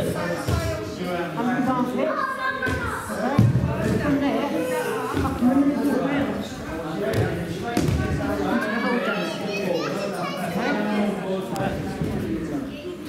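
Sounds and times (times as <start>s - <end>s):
echoing chatter of people: 0.0s - 13.0s.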